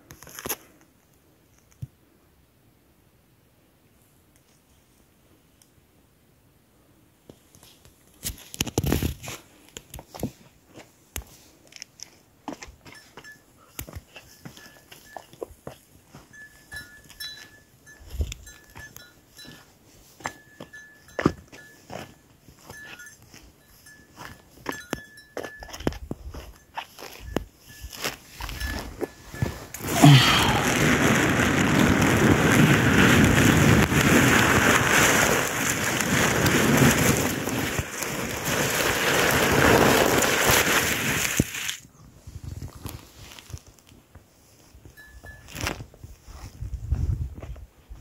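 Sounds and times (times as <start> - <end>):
wind gusting on microphone: 28.4 - 43.0, 45.8 - 48.0.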